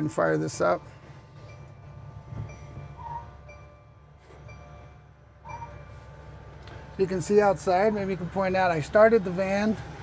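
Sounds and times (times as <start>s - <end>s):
diesel engine idling: 0.0s - 10.0s
short high beeps: 5.4s - 6.0s.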